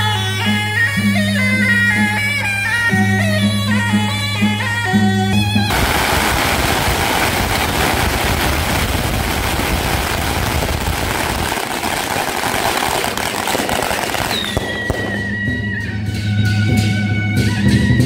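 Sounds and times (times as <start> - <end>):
traditional band music: 0.0 - 18.0
firecrackers crackling: 5.7 - 16.0.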